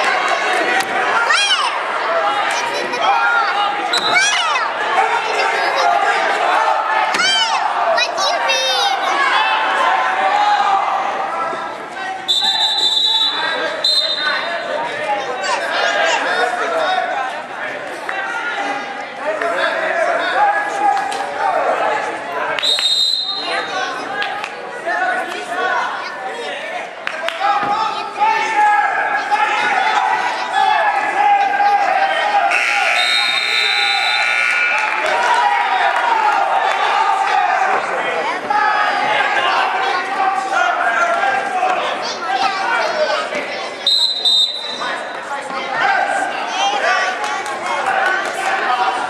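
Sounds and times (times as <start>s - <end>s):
crowd shouting: 0.0s - 49.0s
referee's whistle blasts: 3.9s - 4.4s, 12.3s - 14.5s, 22.6s - 23.8s, 32.1s - 35.0s, 43.8s - 44.9s
scoreboard buzzer blast: 32.5s - 34.9s.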